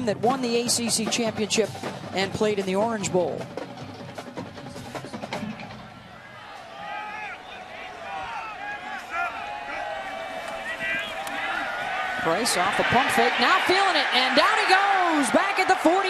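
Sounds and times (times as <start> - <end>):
band drum and wood-block strokes: 0.0 - 5.8
crowd shouting and yelling: 5.7 - 16.0.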